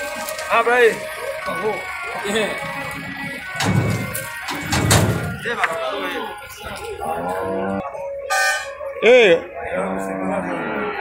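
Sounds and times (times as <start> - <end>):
faint background music: 0.0 - 11.0
dull heavy thumps: 3.6 - 5.5.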